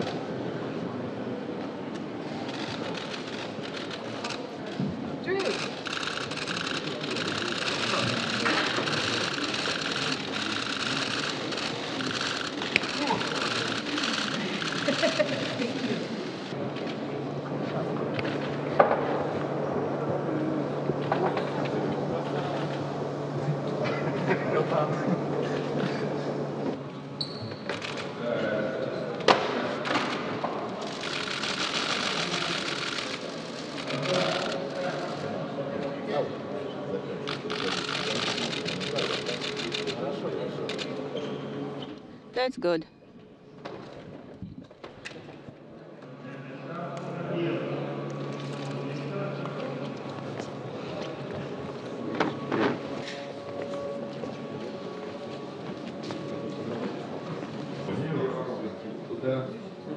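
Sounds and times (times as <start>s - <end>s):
indistinct chatter of people: 0.0s - 59.9s
steady low hum: 27.8s - 59.9s.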